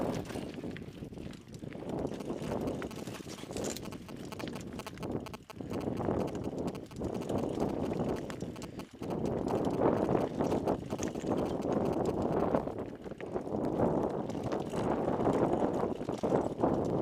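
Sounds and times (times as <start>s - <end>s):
bike rattling: 0.0s - 17.0s
tyres crunching over stones: 0.0s - 17.0s.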